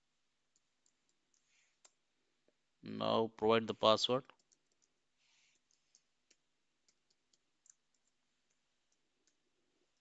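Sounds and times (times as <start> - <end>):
computer keyboard clicks: 4.3 - 5.0, 5.6 - 9.4.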